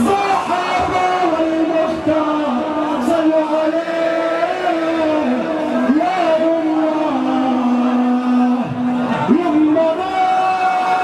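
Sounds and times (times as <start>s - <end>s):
large crowd noise: 0.0s - 11.0s.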